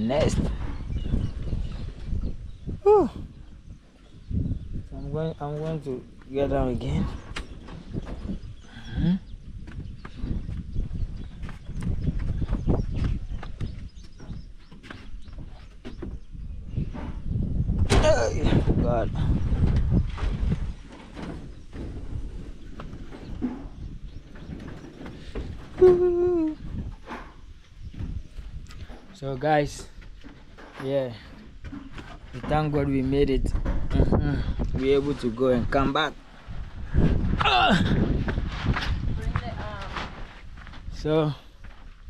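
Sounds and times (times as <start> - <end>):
wind rumble on microphone: 0.0 - 42.0
humming vocal sound: 25.8 - 26.8.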